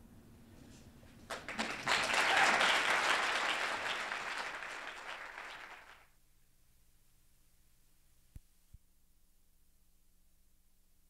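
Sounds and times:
audience applauding: 0:01.3 - 0:06.1.

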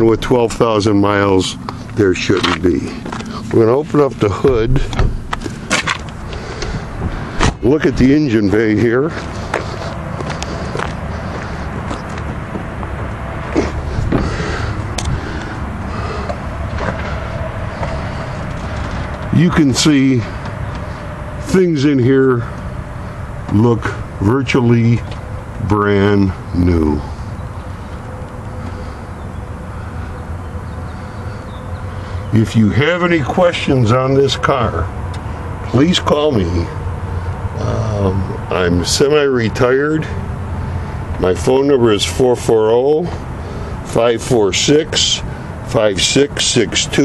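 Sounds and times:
car engine idling: 0:00.0 - 0:47.0
faint constant whine: 0:00.0 - 0:47.0
steady low rumble: 0:00.0 - 0:47.0.

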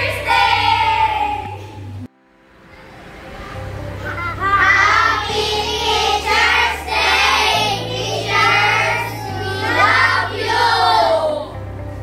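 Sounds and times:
children singing together: 0:00.0 - 0:01.7, 0:03.2 - 0:11.6
background music with bass: 0:00.0 - 0:02.1, 0:03.0 - 0:12.0.

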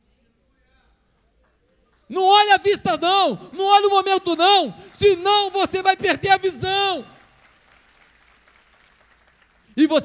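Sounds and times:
amplified voice: 0:02.1 - 0:07.2, 0:09.8 - 0:10.0.

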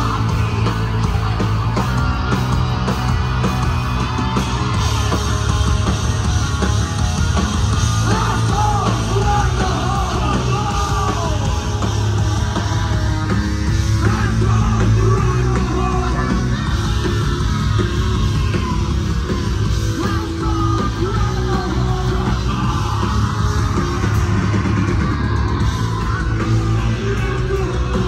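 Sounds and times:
distorted electric guitar: 0:00.0 - 0:28.0
hard rock band playing: 0:00.0 - 0:28.0
sung and shouted vocals: 0:08.0 - 0:11.8, 0:13.9 - 0:16.5.

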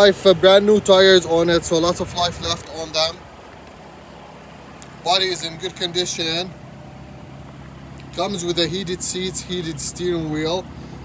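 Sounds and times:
low outdoor hum: 0:00.0 - 0:11.0.

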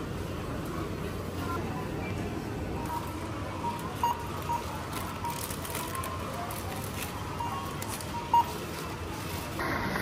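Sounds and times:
store background noise: 0:00.0 - 0:10.0
barcode scanner beep: 0:02.8 - 0:05.6, 0:07.3 - 0:08.6.

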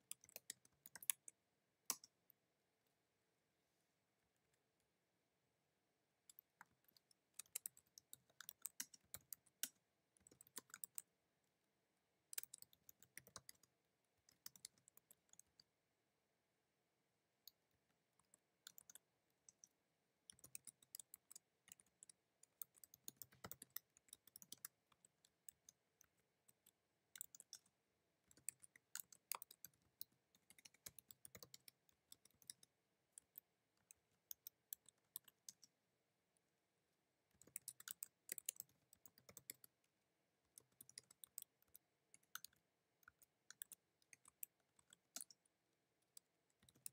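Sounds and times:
faint computer keyboard typing: 0:00.0 - 0:02.4, 0:06.2 - 0:11.2, 0:12.2 - 0:15.7, 0:17.4 - 0:35.8, 0:37.3 - 0:46.9.

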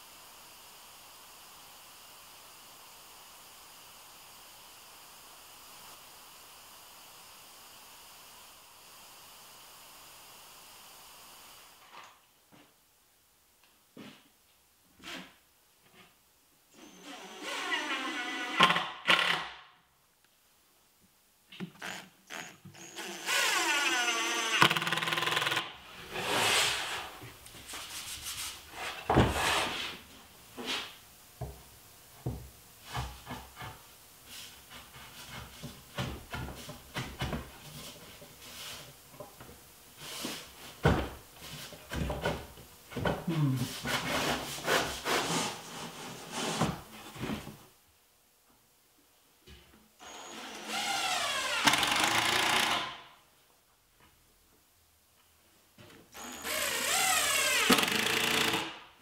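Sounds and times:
cordless drill driving screws: 0:21.8 - 0:25.6, 0:50.0 - 0:53.0, 0:56.1 - 0:58.8.

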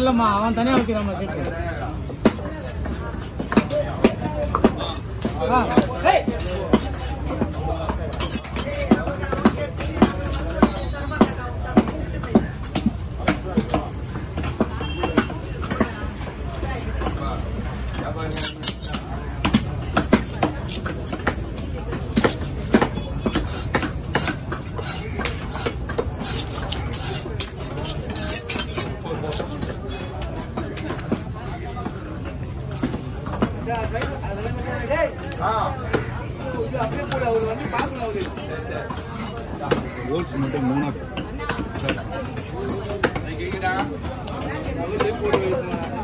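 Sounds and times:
voices: 0:00.0 - 0:46.0
knife chopping fish on wooden block: 0:17.9 - 0:29.9.

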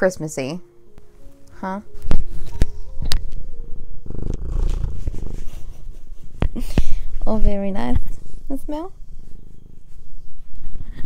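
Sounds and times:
cat purring: 0:02.2 - 0:11.0.

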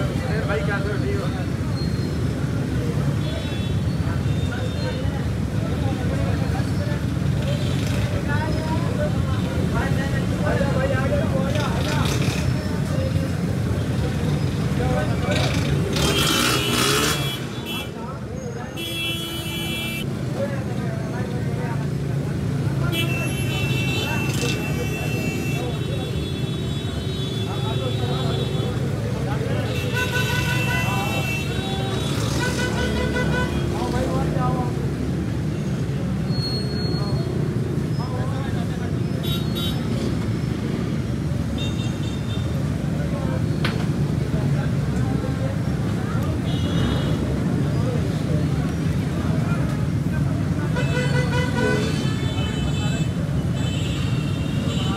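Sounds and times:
traffic rumble: 0:00.0 - 0:54.9
vehicle horns tooting: 0:16.0 - 0:18.0, 0:18.6 - 0:20.1, 0:22.8 - 0:28.9, 0:29.5 - 0:33.9, 0:39.2 - 0:40.0, 0:50.7 - 0:54.9.

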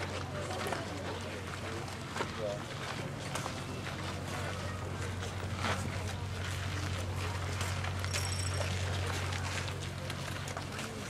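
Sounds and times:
outdoor background noise: 0:00.0 - 0:11.0.

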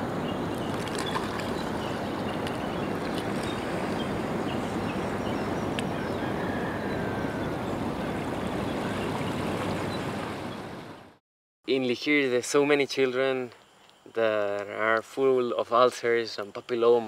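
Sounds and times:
rushing water: 0:00.0 - 0:11.2.

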